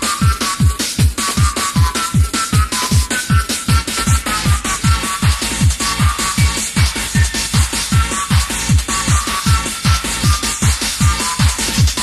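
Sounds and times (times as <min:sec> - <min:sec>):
fast kick drum: 0:00.0 - 0:12.0
techno music: 0:00.0 - 0:12.0.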